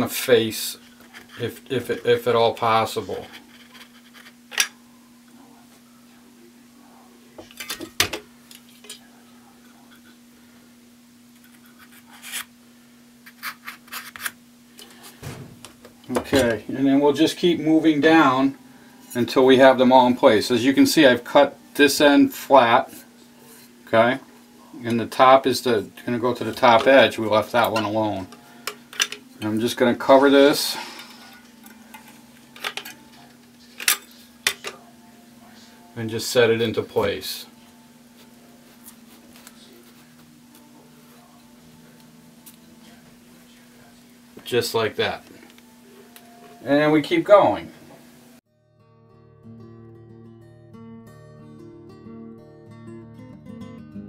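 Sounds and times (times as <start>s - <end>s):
steady low hum: 0.0s - 44.4s.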